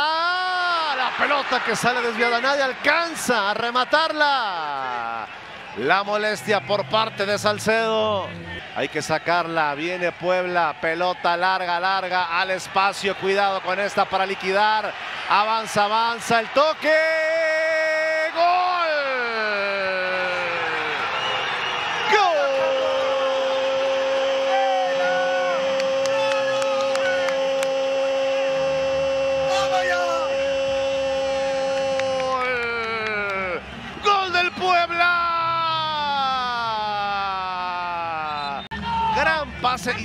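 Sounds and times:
commentator shouting goal call: 0:24.5 - 0:40.0.

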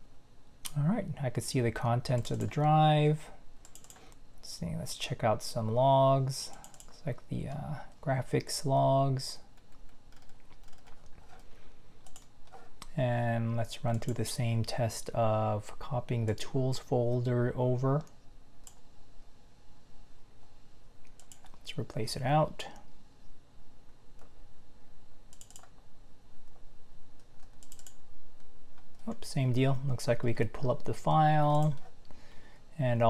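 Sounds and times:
keyboard and mouse clicks: 0:03.6 - 0:04.1, 0:06.5 - 0:07.0, 0:09.6 - 0:12.9, 0:21.0 - 0:21.6, 0:25.3 - 0:25.8, 0:27.2 - 0:29.2
laptop keys clicking: 0:03.6 - 0:04.1, 0:09.6 - 0:11.4, 0:12.0 - 0:12.3, 0:25.4 - 0:25.8, 0:27.3 - 0:28.0.

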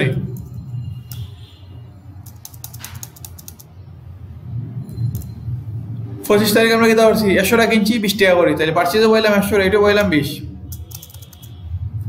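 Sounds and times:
keyboard typing: 0:00.2 - 0:01.4, 0:02.1 - 0:03.8, 0:04.9 - 0:05.4, 0:10.7 - 0:11.7.

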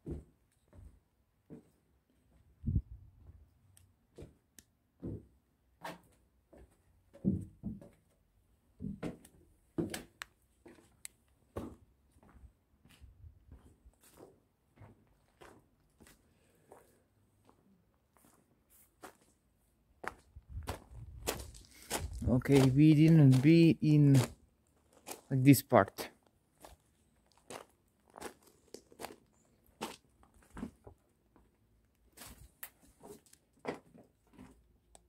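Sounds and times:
footsteps on wooden planks: 0:00.0 - 0:01.8, 0:05.0 - 0:08.2, 0:08.8 - 0:17.6, 0:20.0 - 0:25.3, 0:29.8 - 0:31.5, 0:32.1 - 0:34.6.

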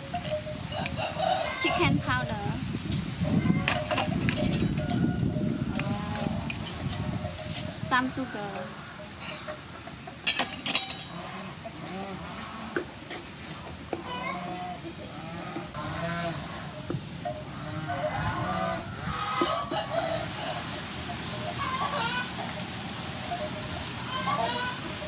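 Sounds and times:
pitched calls: 0:14.0 - 0:25.0.

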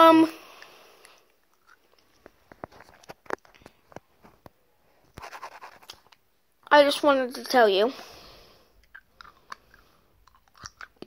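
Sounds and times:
boy chewing and sucking candy: 0:00.6 - 0:03.6, 0:08.7 - 0:11.0
wet lip and tongue clicks: 0:08.8 - 0:11.0.

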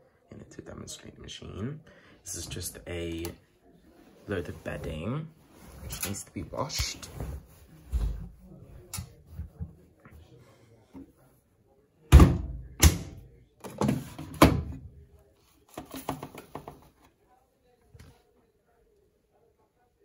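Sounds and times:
washing machine door thumps: 0:12.1 - 0:13.2.

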